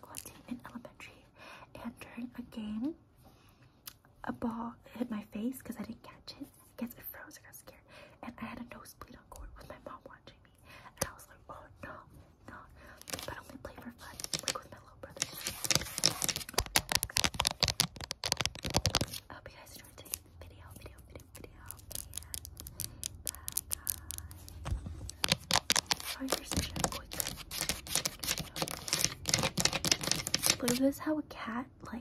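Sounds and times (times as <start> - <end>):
fingernails tapping and scratching: 14.0 - 19.2, 21.6 - 30.8.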